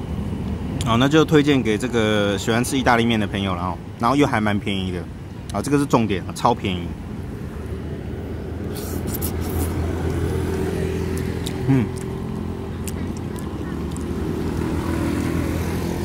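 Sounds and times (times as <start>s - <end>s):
vehicle engine running: 7.3s - 16.0s.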